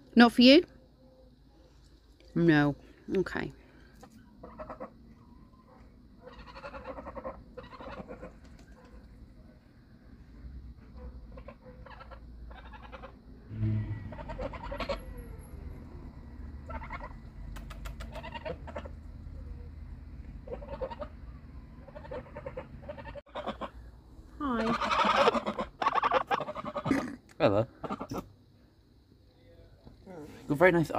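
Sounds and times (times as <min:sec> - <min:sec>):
geese honking and chattering: 0:04.4 - 0:05.0, 0:06.2 - 0:09.0, 0:11.2 - 0:15.3, 0:16.6 - 0:19.0, 0:20.4 - 0:23.8, 0:24.4 - 0:27.1, 0:27.7 - 0:28.3.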